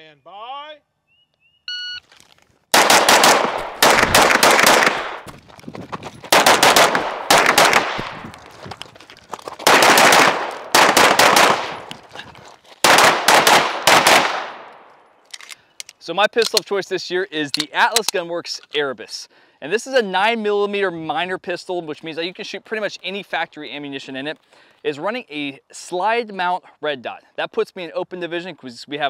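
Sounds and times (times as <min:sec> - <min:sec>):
shot timer beep: 0:01.7 - 0:02.0
rapid gunfire with echo: 0:02.7 - 0:05.3, 0:06.3 - 0:08.2, 0:09.6 - 0:11.9, 0:12.8 - 0:14.7.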